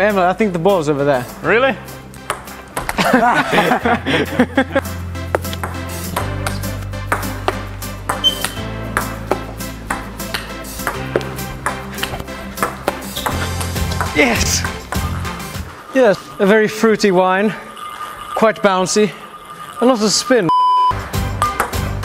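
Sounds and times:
background music with bass line: 0.0 - 15.9, 20.9 - 22.0
table-tennis ball ticking: 2.1 - 3.0, 5.3 - 20.5, 21.4 - 21.8.

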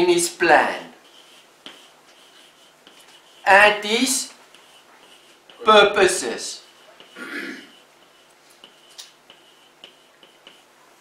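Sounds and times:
chalk tapping and scratching: 0.2 - 11.0.

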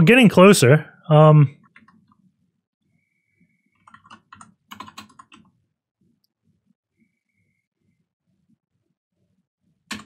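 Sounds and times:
typing on computer keyboard: 3.8 - 5.5.

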